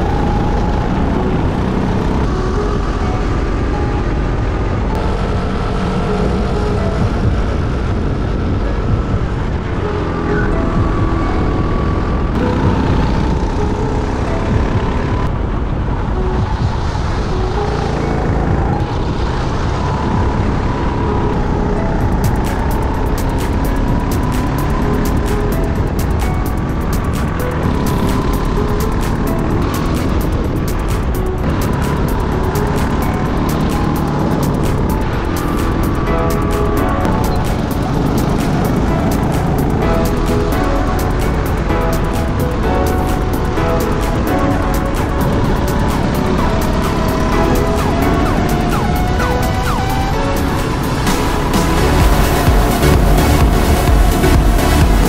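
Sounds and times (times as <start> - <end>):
kart engine racing: 0.0 - 55.0.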